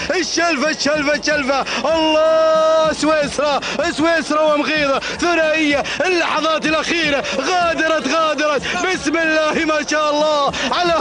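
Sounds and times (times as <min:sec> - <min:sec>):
man giving excited race commentary: 0:00.0 - 0:11.0.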